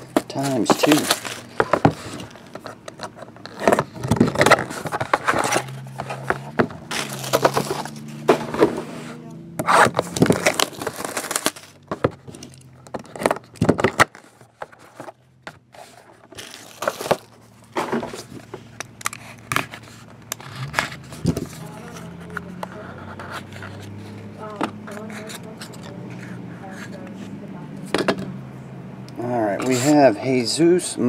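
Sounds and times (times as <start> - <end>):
shrink wrap crinkling: 0.2 - 8.1, 10.0 - 15.0, 16.3 - 17.6
knife scraping cardboard seal: 8.8 - 11.7.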